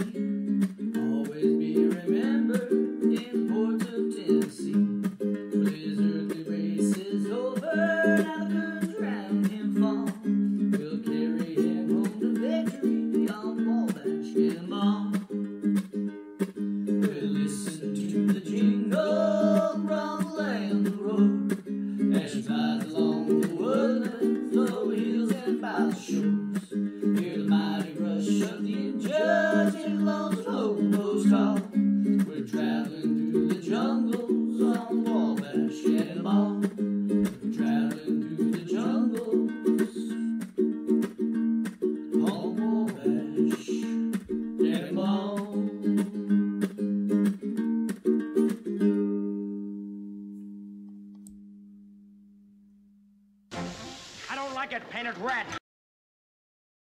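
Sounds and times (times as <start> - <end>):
ukulele strumming: 0.0 - 52.0, 53.5 - 55.4.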